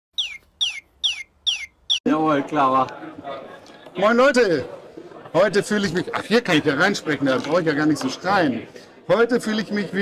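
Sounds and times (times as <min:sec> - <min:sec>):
high bird-like chirps: 0:00.1 - 0:02.0.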